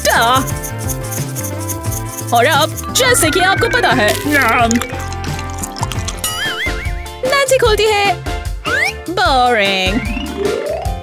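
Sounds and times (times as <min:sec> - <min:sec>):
background music: 0:00.0 - 0:11.0
person speaking: 0:01.6 - 0:06.2.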